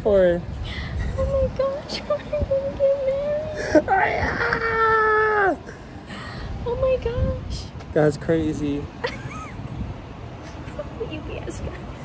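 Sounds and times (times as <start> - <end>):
woman whimpering and wailing: 2.8 - 5.8.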